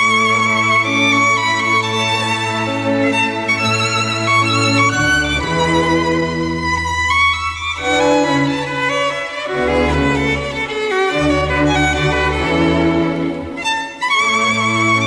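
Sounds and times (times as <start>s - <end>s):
violin melody with vibrato: 0.0s - 15.0s.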